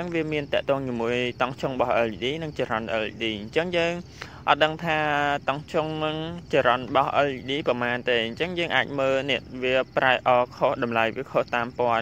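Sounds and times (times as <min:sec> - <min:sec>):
faint high-pitched hiss: 0:00.0 - 0:12.0
man talking: 0:00.0 - 0:12.0.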